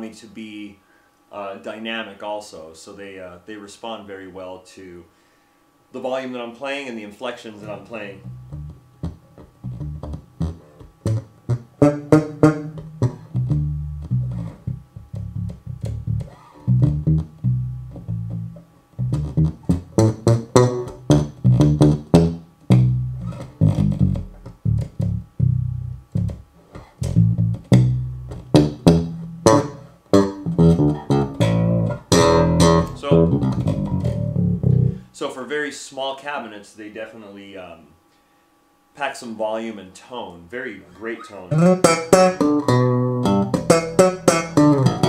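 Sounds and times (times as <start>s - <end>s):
electric bass guitar plucked notes: 7.6s - 35.1s, 41.5s - 45.0s.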